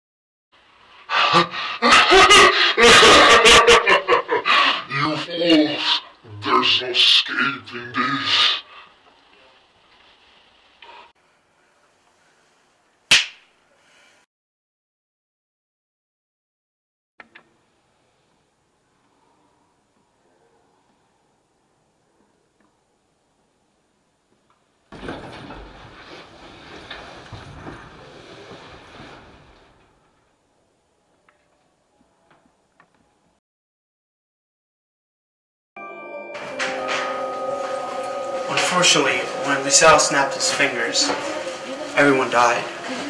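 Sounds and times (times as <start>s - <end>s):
finger snap: 13.1s - 13.5s.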